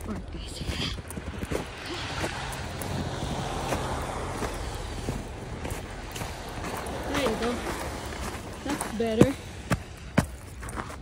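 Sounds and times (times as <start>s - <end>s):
footsteps in wet snow: 0.0s - 11.0s.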